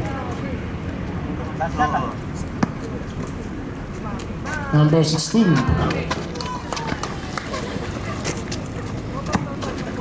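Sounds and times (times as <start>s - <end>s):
running footsteps on concrete: 5.4s - 10.0s.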